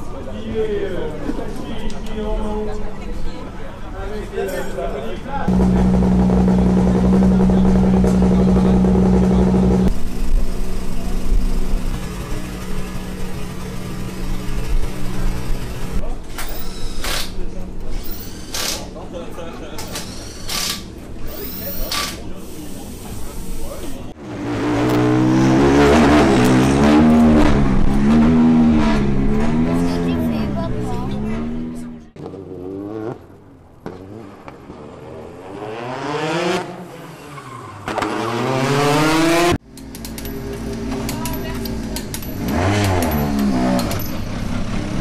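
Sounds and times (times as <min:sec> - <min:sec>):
engine revving: 0:05.5 - 0:16.0, 0:24.2 - 0:36.9, 0:37.9 - 0:39.6, 0:40.8 - 0:45.0
car engine idling: 0:05.5 - 0:16.1
pneumatic wheel gun bursts: 0:16.3 - 0:18.9, 0:19.8 - 0:23.4.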